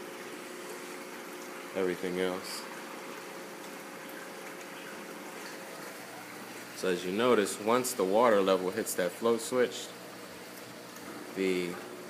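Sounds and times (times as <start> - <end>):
pump hum: 0.0 - 12.0.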